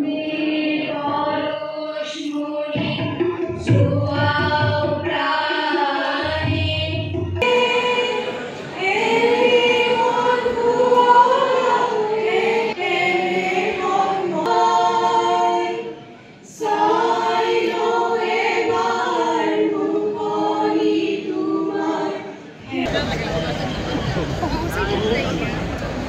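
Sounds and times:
group singing in unison: 0.0s - 23.0s.

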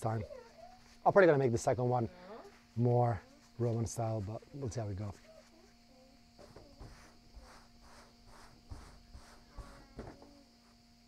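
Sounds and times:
faint steady hum: 0.0s - 11.0s
insects chirping: 0.0s - 11.0s.

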